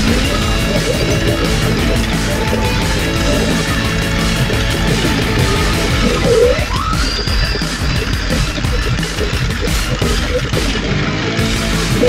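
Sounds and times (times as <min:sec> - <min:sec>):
pachinko machine music: 0:00.0 - 0:12.0.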